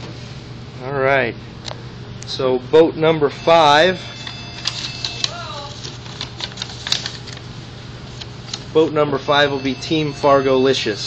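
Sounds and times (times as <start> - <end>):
steady low hum: 0.0 - 11.0
paper crinkling: 4.6 - 7.5.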